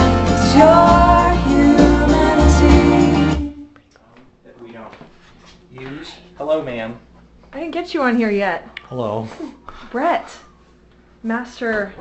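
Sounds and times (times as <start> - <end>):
recorded song with strummed guitar: 0.0 - 3.5.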